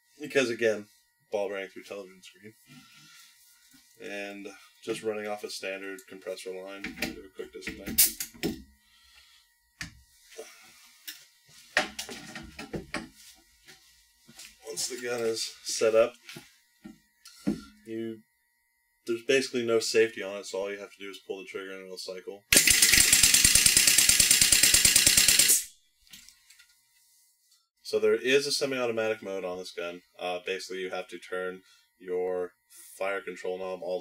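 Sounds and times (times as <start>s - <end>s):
pneumatic gun rapid clacks: 22.5s - 25.7s.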